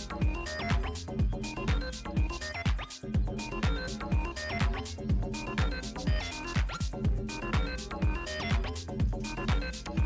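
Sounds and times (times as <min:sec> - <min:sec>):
kick drum: 0:00.0 - 0:10.0.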